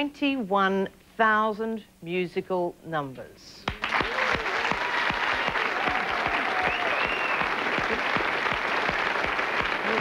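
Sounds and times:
audience applauding: 3.7 - 10.0.

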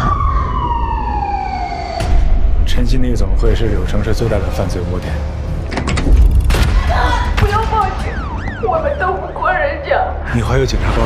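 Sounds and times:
siren-like wail sliding down: 0.0 - 2.4.

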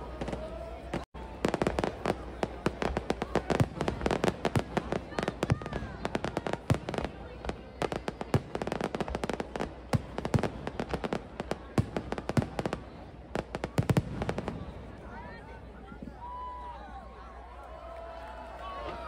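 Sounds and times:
fireworks bangs and crackles: 0.0 - 16.5.

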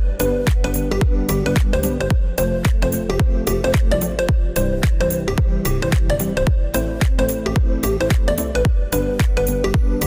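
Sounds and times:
deep kick drums: 0.0 - 10.0
electronic dance music: 0.0 - 10.0.

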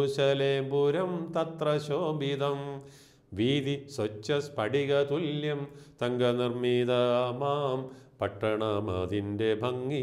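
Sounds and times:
man singing a hymn solo: 0.0 - 10.0.

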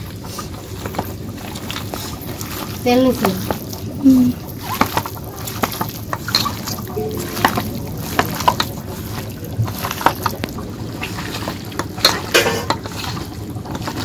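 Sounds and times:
hands squishing raw meat: 0.0 - 14.0.

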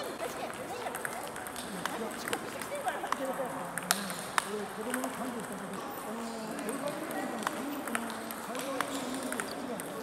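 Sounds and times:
hum of voices: 0.0 - 10.0
table tennis ball clicks: 0.8 - 5.6, 6.5 - 10.0.

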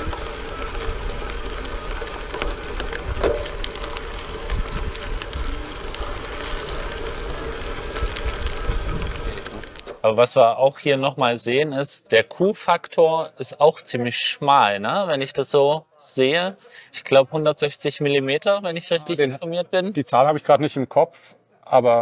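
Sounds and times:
wind rumble on microphone: 0.0 - 9.9
bicycle tyres on gravel: 0.0 - 11.0.

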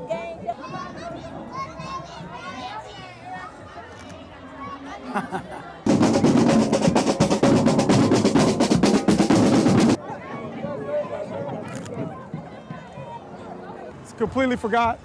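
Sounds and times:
crowd voices: 0.0 - 15.0
snare drums playing fast: 5.9 - 10.0.

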